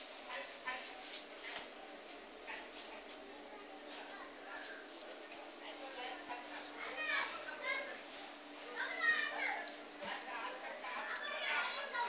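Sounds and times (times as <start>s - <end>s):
children chattering and calling out: 3.2s - 4.9s, 6.7s - 9.8s, 10.6s - 12.0s.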